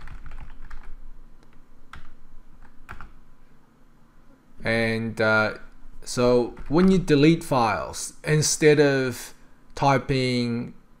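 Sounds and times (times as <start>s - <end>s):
typing on computer keyboard: 0.0s - 1.0s, 1.9s - 3.1s.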